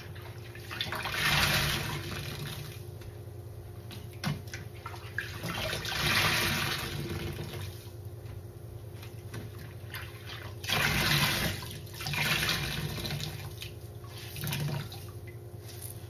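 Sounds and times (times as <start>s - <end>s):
sponge squeezed with water gushing: 0.6s - 2.8s, 5.1s - 7.8s, 10.2s - 15.1s.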